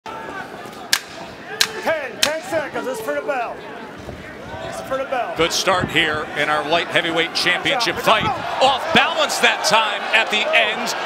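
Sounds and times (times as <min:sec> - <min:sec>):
arena crowd noise: 0:00.0 - 0:11.0
sharp cracks: 0:00.9 - 0:02.5
commentator speaking: 0:05.0 - 0:11.0.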